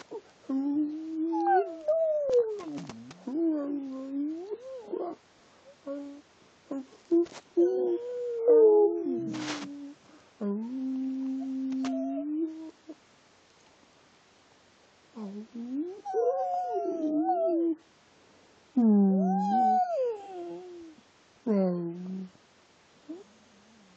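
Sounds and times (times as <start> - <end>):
dog moaning and yowling: 0.9 - 5.2, 6.0 - 10.0, 10.6 - 12.7, 15.8 - 17.8, 19.2 - 21.0.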